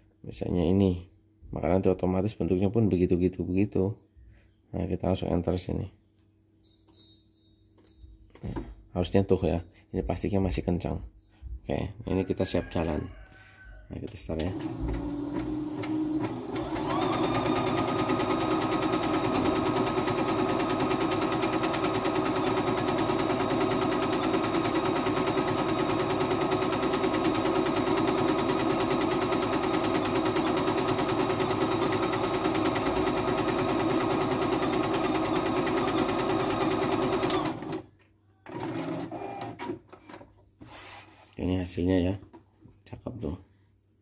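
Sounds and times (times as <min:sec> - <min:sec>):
sewing machine stitching: 0:14.4 - 0:39.8
faint handling sounds: 0:40.0 - 0:44.0.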